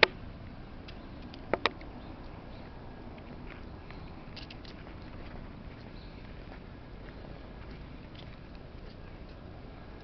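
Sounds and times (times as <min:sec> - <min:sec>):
steady outdoor noise: 0:00.0 - 0:10.0
footsteps on asphalt: 0:00.4 - 0:09.8
light clicks and scuffs: 0:00.8 - 0:09.4.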